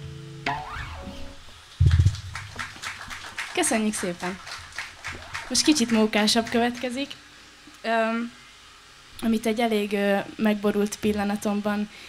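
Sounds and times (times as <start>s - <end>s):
rising and falling cry: 4.9s - 5.6s.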